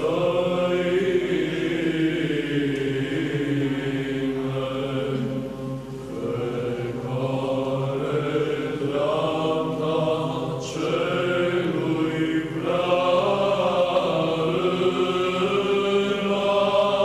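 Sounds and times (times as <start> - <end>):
choir chanting: 0.0 - 17.0.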